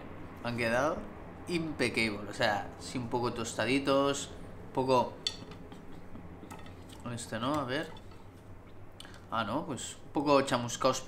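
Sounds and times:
skewer clinking on ceramic plate: 5.2 - 5.6.

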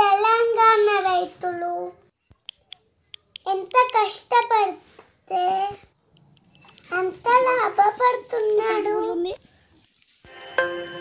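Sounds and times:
young child singing: 6.9 - 9.4.

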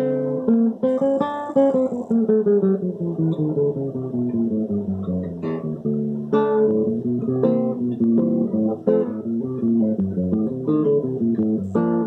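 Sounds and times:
acoustic guitar plucked notes: 0.0 - 12.0
guitar chord strummed: 0.0 - 12.0.

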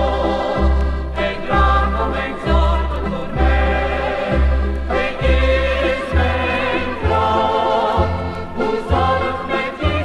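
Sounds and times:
choir singing a hymn: 0.0 - 10.0.

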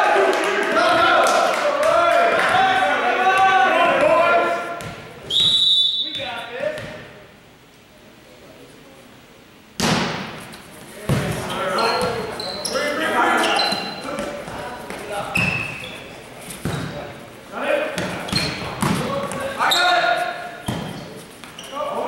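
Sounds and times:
people shouting: 0.0 - 4.7
voices of players and spectators: 0.0 - 22.0
referee's whistle: 5.2 - 6.4
volleyball struck hard: 9.8 - 10.4
short high squeaks: 11.5 - 14.1, 15.3 - 16.1.

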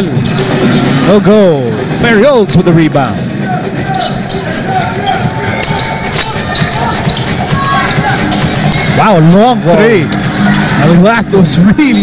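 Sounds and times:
crowd noise: 0.0 - 12.0
music playing: 0.0 - 12.0.

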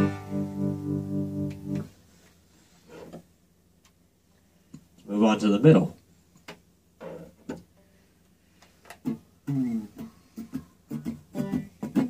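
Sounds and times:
electric guitar notes: 0.0 - 1.9.

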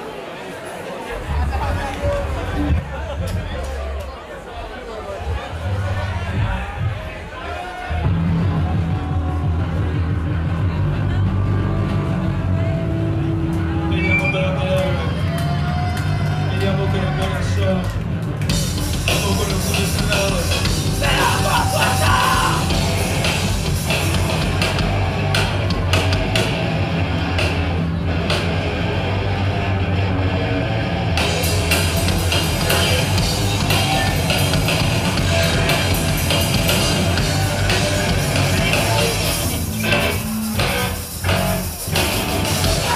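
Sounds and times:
distorted electric guitars and bass: 1.2 - 3.7, 7.9 - 42.9
punk band playing live: 7.9 - 14.3, 17.4 - 42.9.

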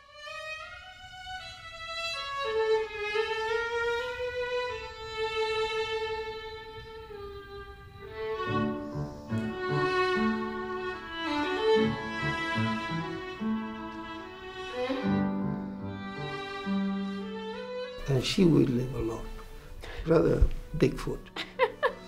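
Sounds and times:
violin slow melody: 0.0 - 22.0
grand piano accompaniment: 2.2 - 22.0.

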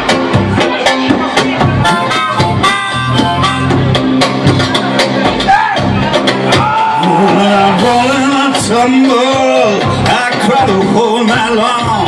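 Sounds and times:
acoustic guitar: 0.0 - 12.0
bass guitar: 0.0 - 12.0
drums keeping a steady beat: 0.0 - 12.0
amplified harmonica: 1.8 - 4.3.

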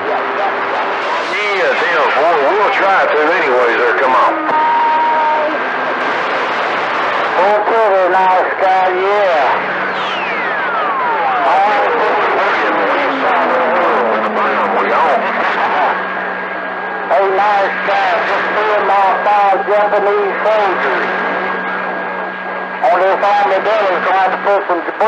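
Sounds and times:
radio static hiss: 0.0 - 16.2, 17.0 - 21.3, 22.7 - 25.0
garbled radio voices: 0.0 - 21.4, 22.7 - 25.0
low hum: 0.0 - 25.0
whistle sliding down in pitch: 9.9 - 11.4.

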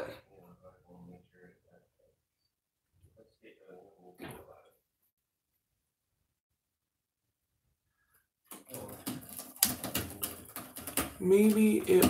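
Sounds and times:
garbled clicks and noise: 8.5 - 12.0.

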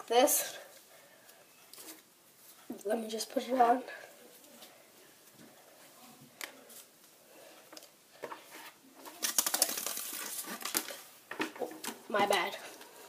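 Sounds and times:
rapid rattling paper clicks: 9.2 - 11.0.

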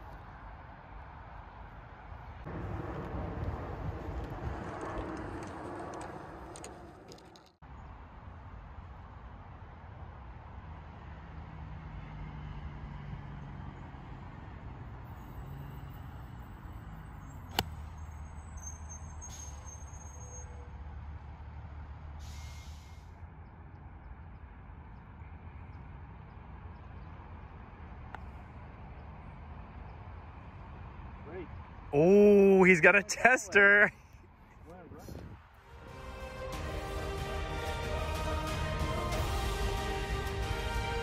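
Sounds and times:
golf club striking ball: 17.5 - 17.8
brief hiss: 22.2 - 23.1.

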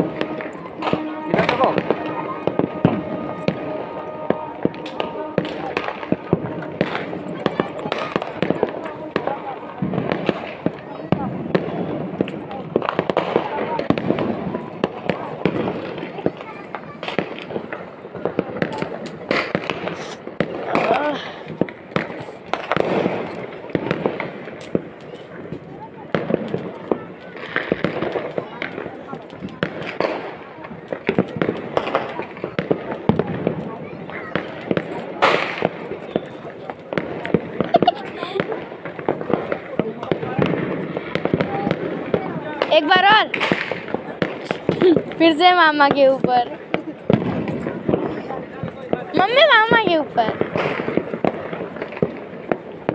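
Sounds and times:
firecrackers popping and crackling: 0.0 - 52.9
people's voices: 0.0 - 52.9.

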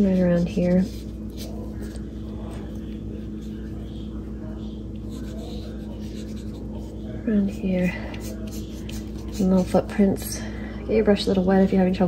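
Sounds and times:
paintbrush brushing on paper: 0.0 - 9.9.

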